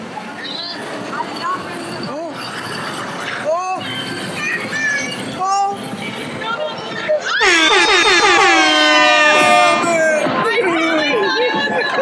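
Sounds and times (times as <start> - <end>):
horn-like electronic tone: 7.4 - 10.2.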